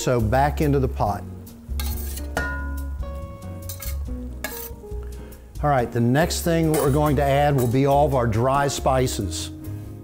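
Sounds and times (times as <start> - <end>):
soft background music: 0.0 - 10.0
metal spatula scraping and clinking: 1.7 - 3.0, 3.6 - 4.8, 6.3 - 8.1.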